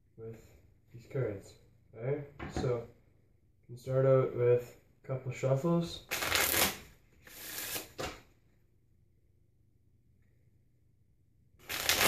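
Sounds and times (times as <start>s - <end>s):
playing cards being shuffled: 6.1s - 8.2s, 11.6s - 12.0s.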